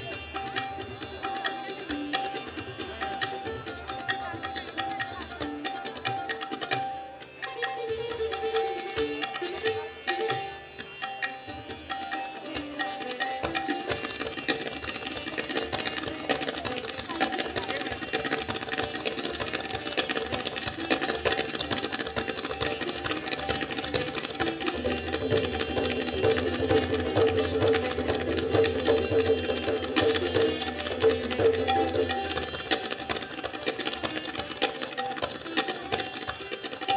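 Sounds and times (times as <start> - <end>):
tabla: 0.0 - 36.9
fast plucked-string playing: 13.4 - 36.9.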